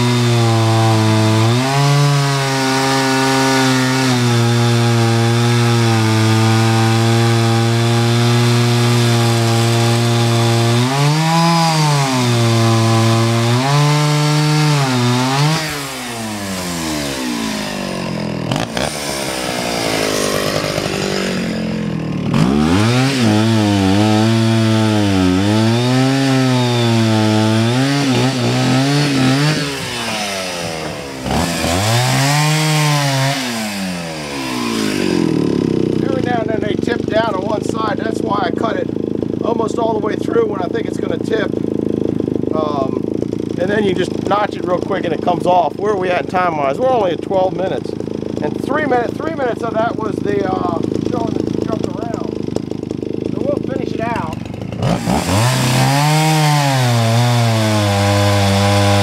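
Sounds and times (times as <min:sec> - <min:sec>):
chainsaw cutting log: 0:00.0 - 0:59.0.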